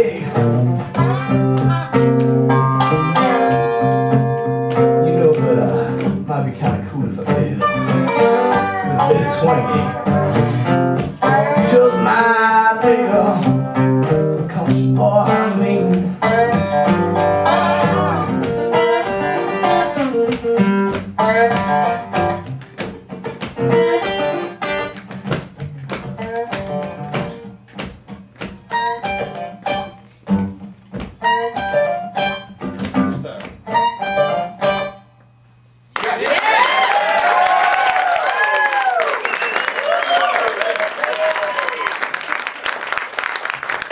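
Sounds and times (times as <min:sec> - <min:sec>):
acoustic guitar and dobro country song: 0:00.0 - 0:35.1
audience applauding and cheering: 0:35.9 - 0:43.9.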